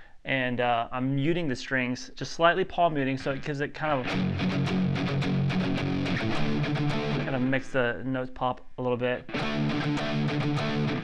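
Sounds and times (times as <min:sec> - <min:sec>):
electric guitar palm-muted chords: 0:04.0 - 0:07.6, 0:09.3 - 0:11.0.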